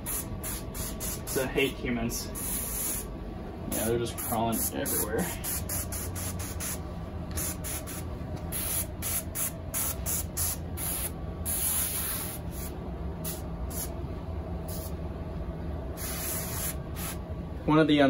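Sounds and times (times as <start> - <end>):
low steady hum: 0.0 - 18.0
sprayer hissing bursts: 7.4 - 13.9, 16.0 - 17.2.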